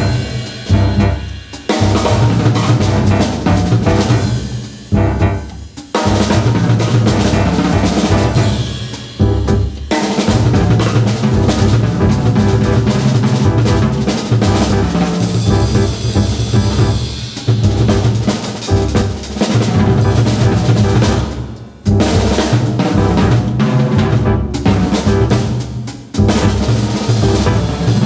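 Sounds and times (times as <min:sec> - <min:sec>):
jazz drum kit: 0:00.0 - 0:28.0
plucked upright double bass: 0:02.0 - 0:04.2, 0:05.0 - 0:05.5, 0:06.3 - 0:08.5, 0:10.4 - 0:17.0, 0:19.7 - 0:21.2, 0:22.9 - 0:25.5, 0:27.2 - 0:28.0.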